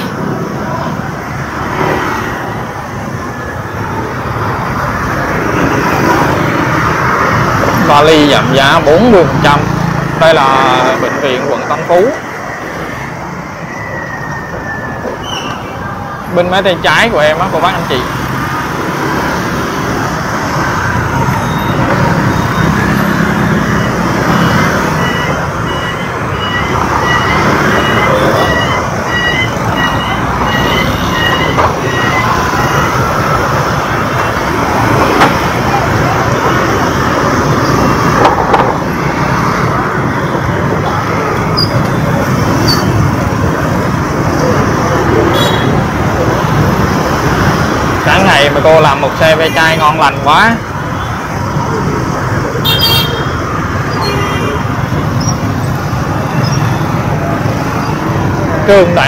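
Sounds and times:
street traffic: 0.0 - 59.0
vehicles passing close: 0.0 - 59.0
short electronic beeps: 21.4 - 32.9.

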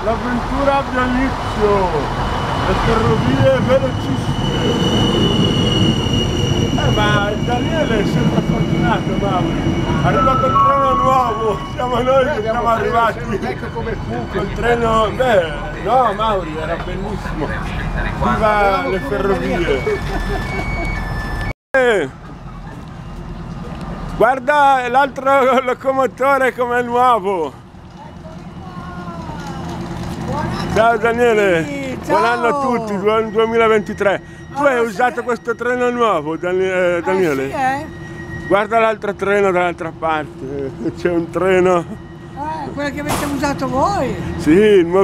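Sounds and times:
train rumbling past: 0.0 - 45.0
high-pitched whine: 1.0 - 16.9, 28.3 - 45.0.

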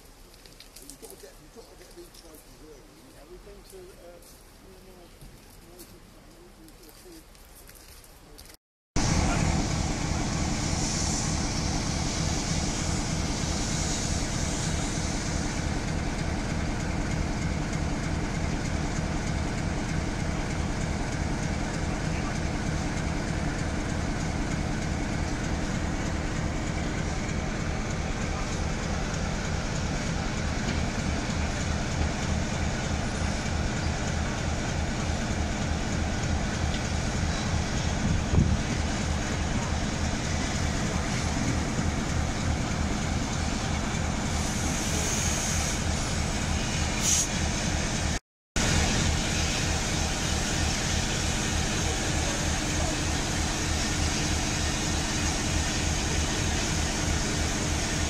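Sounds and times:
steam hissing: 9.0 - 58.0.

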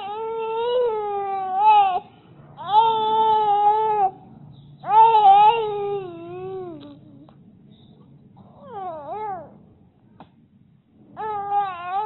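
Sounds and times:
infant crying: 0.0 - 4.2, 4.8 - 7.3, 8.4 - 9.6, 11.2 - 12.0.

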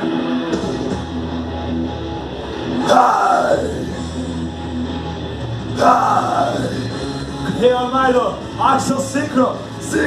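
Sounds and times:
rock backing track with guitar: 0.0 - 8.6
man yelling into microphone: 2.8 - 3.8, 5.8 - 6.8.

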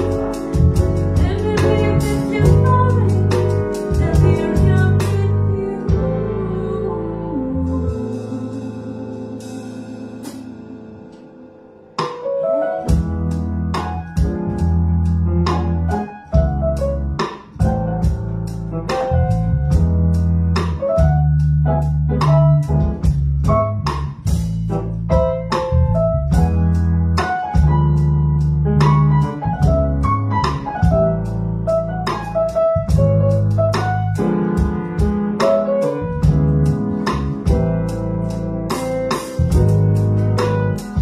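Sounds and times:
live band playing: 0.0 - 5.4, 29.0 - 41.0
held keyboard chord: 0.0 - 23.8, 24.6 - 41.0.

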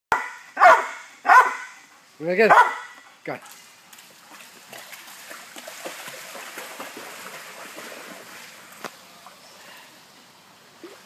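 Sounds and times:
dog barking: 0.1 - 1.8, 2.5 - 3.0.

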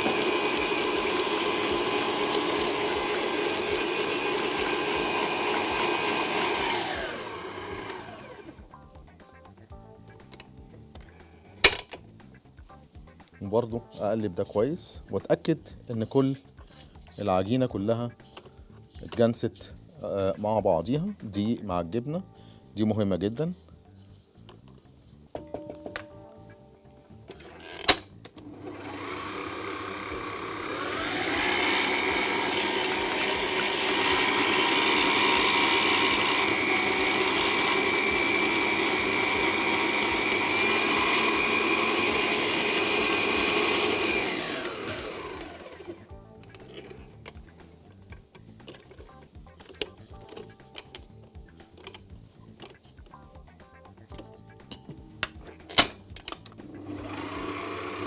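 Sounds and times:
stand mixer motor whine: 0.0 - 8.6, 28.4 - 46.0, 56.8 - 58.0.

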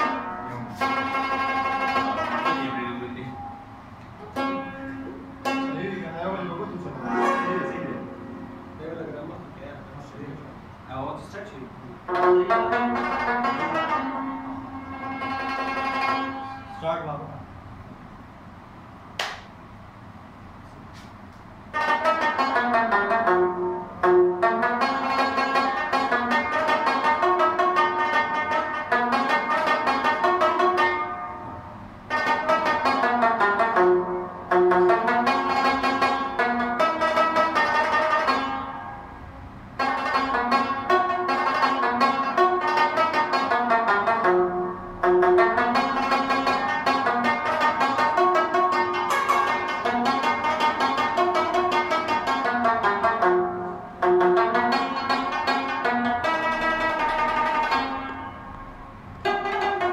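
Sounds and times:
fast plucked lute runs: 0.0 - 10.1, 12.0 - 17.0, 21.7 - 39.1, 39.7 - 59.9.

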